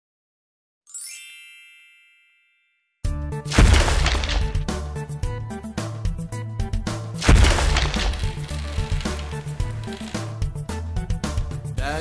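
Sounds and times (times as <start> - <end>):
loud background music: 3.2 - 12.0.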